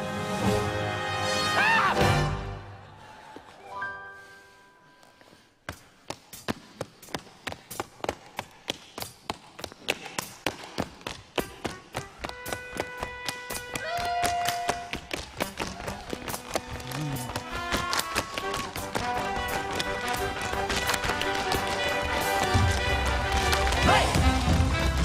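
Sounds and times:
orchestral music: 0:00.0 - 0:03.0, 0:03.6 - 0:04.8, 0:17.4 - 0:25.0
tap shoes tapping on stage: 0:06.1 - 0:25.0.

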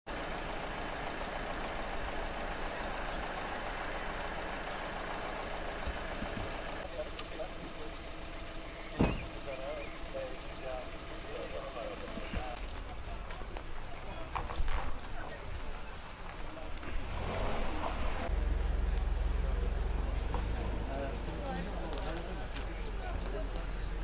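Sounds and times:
cars passing: 0:00.1 - 0:24.0.

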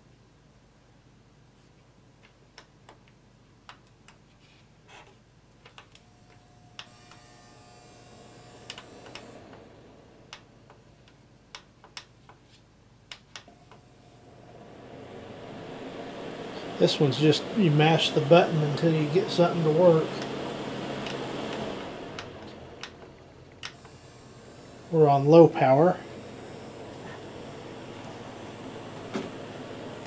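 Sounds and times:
heater fan whirring: 0:00.0 - 0:30.0.

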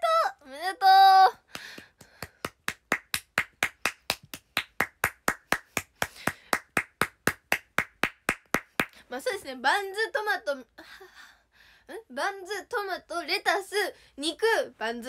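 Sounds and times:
person clapping: 0:01.4 - 0:09.0.

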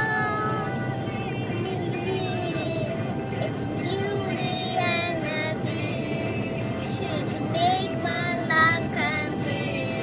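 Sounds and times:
pop music with vocals: 0:00.0 - 0:10.0.

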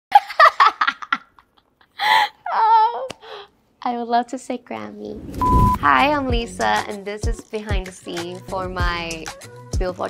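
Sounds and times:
woman speaking: 0:05.8 - 0:07.8.

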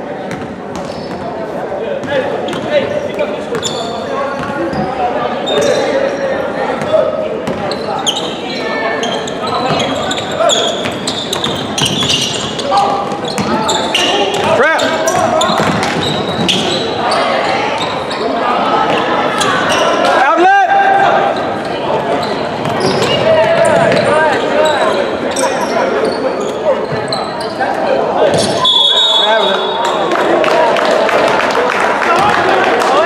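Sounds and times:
echoing voices: 0:00.0 - 0:33.0
sneakers squeaking: 0:00.2 - 0:20.2, 0:21.2 - 0:30.0
basketball bouncing on wooden floor: 0:15.6 - 0:16.5.

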